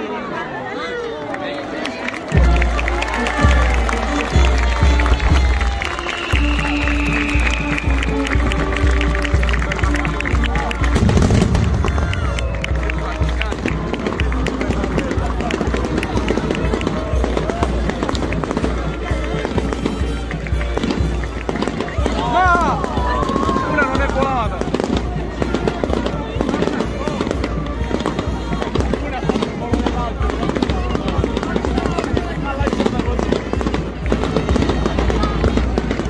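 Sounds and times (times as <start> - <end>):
crowd voices: 0.0 - 36.0
firecrackers crackling: 2.1 - 36.0
band playing: 2.3 - 36.0.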